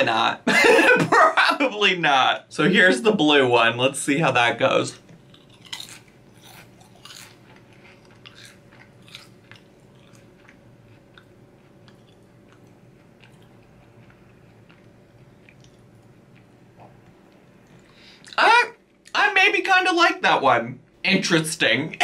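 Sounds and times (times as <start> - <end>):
person chewing crisp chips: 5.1 - 18.4.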